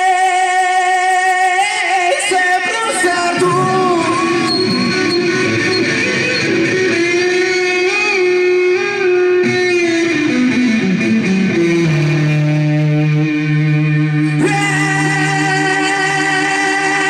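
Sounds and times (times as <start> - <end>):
electric guitar lead line: 0.0 - 17.0.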